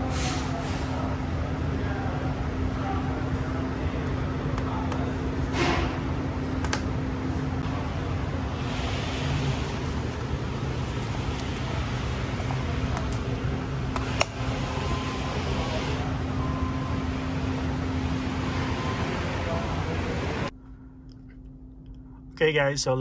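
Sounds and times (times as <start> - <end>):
steady mechanical hum: 0.0 - 23.0.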